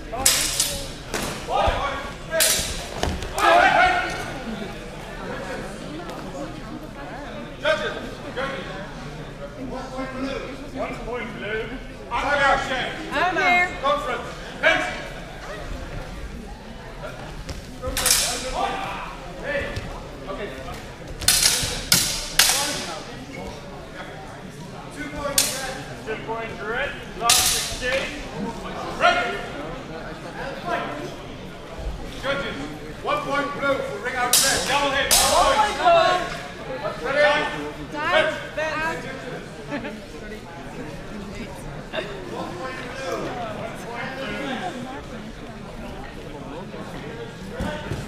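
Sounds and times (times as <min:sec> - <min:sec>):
swords clashing: 0:00.2 - 0:01.4, 0:02.4 - 0:03.0, 0:17.9 - 0:18.6, 0:21.2 - 0:22.9, 0:25.3 - 0:25.8, 0:27.3 - 0:28.1, 0:34.3 - 0:35.5.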